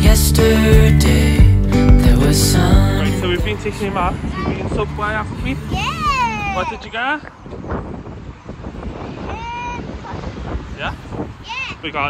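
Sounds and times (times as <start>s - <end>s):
wind buffeting microphone: 3.2s - 12.0s
child's high-pitched call: 5.7s - 6.8s, 9.2s - 10.3s, 11.4s - 11.8s.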